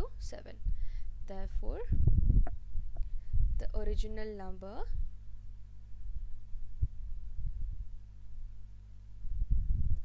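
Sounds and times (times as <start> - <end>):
low electrical hum: 0.0 - 10.0
soft low thumps: 1.9 - 3.7.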